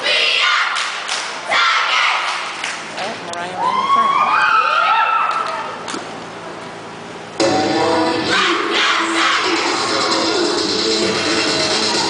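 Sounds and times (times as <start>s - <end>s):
crowd cheering and whooping: 3.6s - 5.8s, 11.5s - 12.0s
loud dance music: 7.4s - 12.0s.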